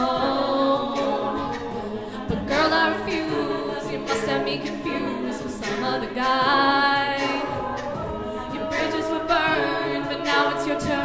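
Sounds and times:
a cappella group singing harmonies: 0:00.0 - 0:11.0
woman singing lead vocal: 0:00.0 - 0:11.0.

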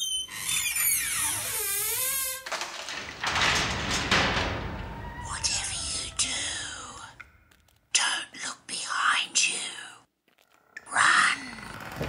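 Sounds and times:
person whispering: 0:05.4 - 0:07.2, 0:07.9 - 0:10.1, 0:10.8 - 0:11.8.

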